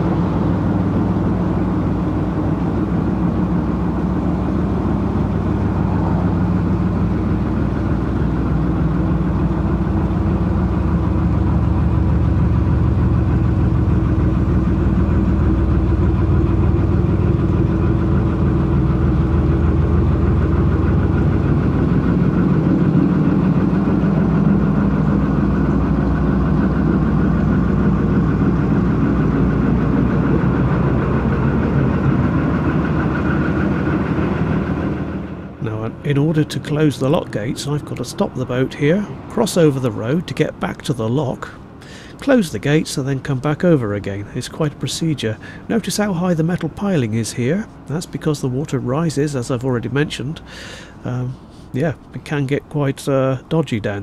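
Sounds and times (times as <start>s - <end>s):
boat diesel engine running: 0.0s - 54.0s.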